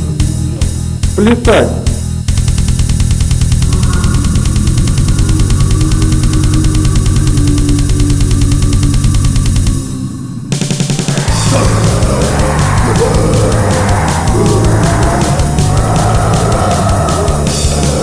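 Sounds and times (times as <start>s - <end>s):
rapid drum beat: 0.0s - 10.0s, 10.6s - 18.0s
rock band playing: 2.0s - 10.0s, 10.7s - 18.0s.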